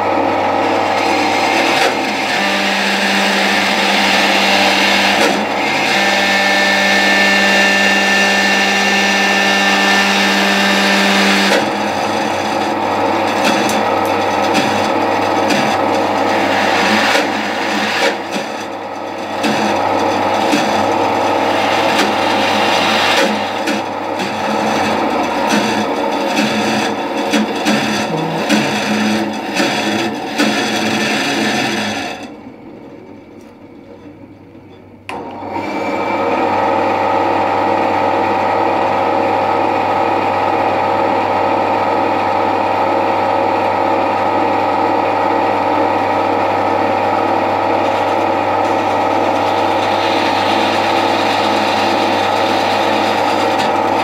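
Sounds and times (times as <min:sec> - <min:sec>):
bandsaw motor hum: 0:00.0 - 0:54.0
bandsaw blade rasping: 0:01.3 - 0:32.3, 0:47.7 - 0:54.0.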